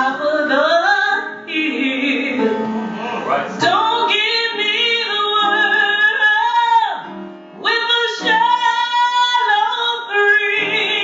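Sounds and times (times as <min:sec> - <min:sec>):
woman singing gospel song: 0:00.0 - 0:02.5, 0:03.6 - 0:07.0, 0:07.6 - 0:11.0
piano accompaniment: 0:00.0 - 0:11.0.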